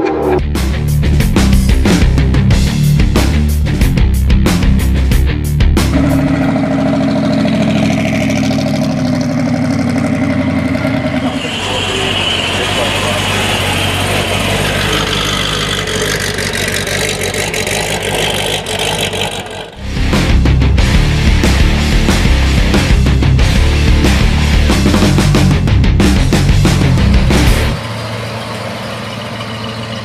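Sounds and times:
car engine running: 0:00.0 - 0:30.0.

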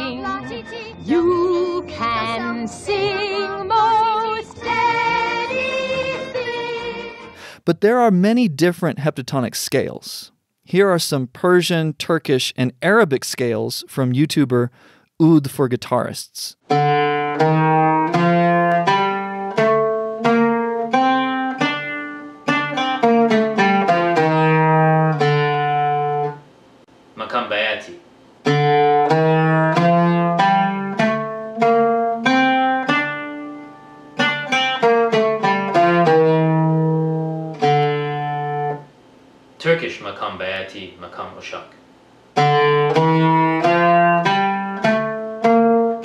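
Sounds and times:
plucked string instrument scales: 0:16.6 - 0:26.5, 0:28.4 - 0:38.9, 0:42.4 - 0:46.0.

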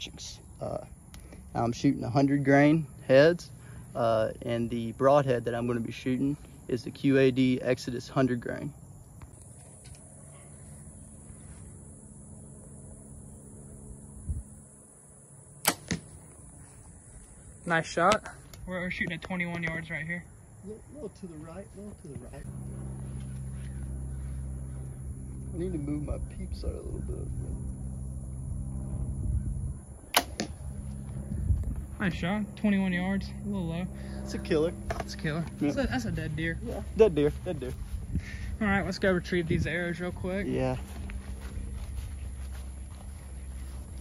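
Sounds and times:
bow string release crack: 0:15.6 - 0:16.2, 0:30.1 - 0:30.6
arrow striking target: 0:15.6 - 0:16.3, 0:30.1 - 0:30.6
bowstring snap: 0:30.1 - 0:30.5.

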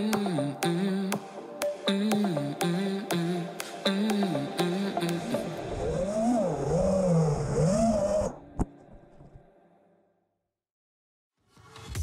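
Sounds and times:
drone motors whining: 0:05.6 - 0:08.5.

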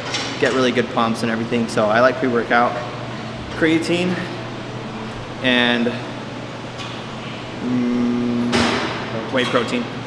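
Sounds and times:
man's drawn-out hesitation sound: 0:07.6 - 0:08.7.

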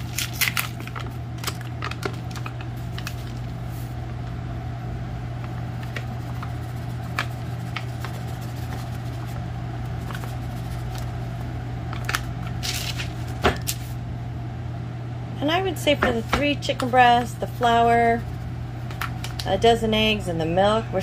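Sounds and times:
low electrical hum: 0:00.0 - 0:21.0
paper bag rustling: 0:12.5 - 0:14.0.

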